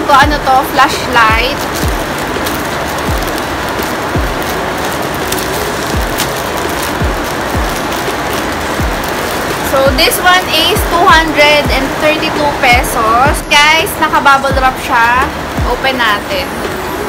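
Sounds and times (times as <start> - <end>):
plastic rustling: 0.0 - 16.8
heavy rain hissing: 0.0 - 17.0
music with thumping beat: 1.3 - 4.6, 5.3 - 12.0, 12.7 - 13.7, 14.5 - 14.9, 15.6 - 15.9.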